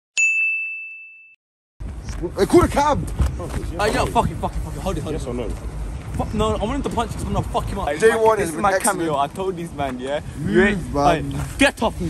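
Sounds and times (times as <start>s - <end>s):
bright chime ding: 0.2s - 1.4s.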